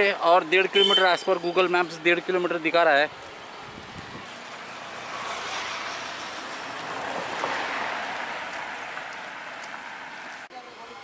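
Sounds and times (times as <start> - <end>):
motor vehicle passing: 3.3 - 10.5.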